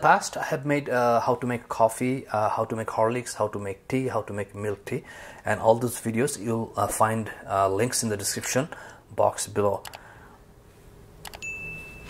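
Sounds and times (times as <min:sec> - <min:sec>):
high ding: 0:11.4 - 0:12.0.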